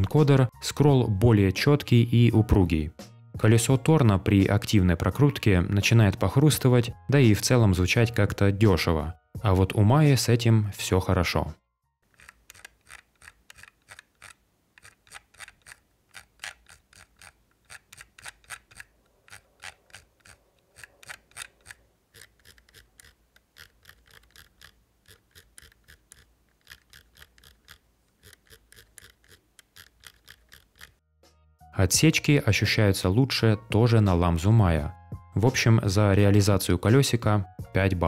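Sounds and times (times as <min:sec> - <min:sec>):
mouse scroll wheel ticking: 0:12.1 - 0:31.0.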